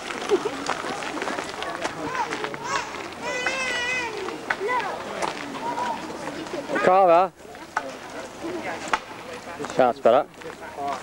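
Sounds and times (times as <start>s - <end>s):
footsteps crunching on dirt path: 0.0s - 11.0s
people chattering: 0.0s - 11.0s.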